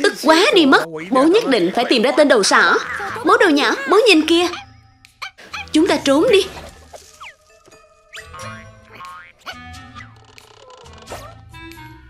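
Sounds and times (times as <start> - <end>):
cartoon background music: 1.9 - 12.0.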